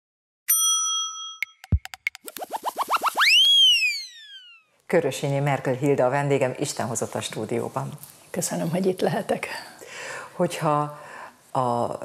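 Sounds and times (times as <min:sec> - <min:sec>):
ringing chime: 0:00.5 - 0:01.8
short rising chirps: 0:01.7 - 0:04.7.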